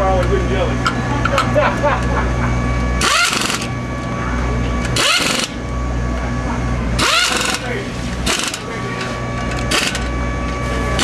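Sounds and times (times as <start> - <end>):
steady low hum: 0.0 - 11.0
pneumatic air ratchet whining: 3.0 - 3.7, 4.8 - 5.7, 7.0 - 11.0.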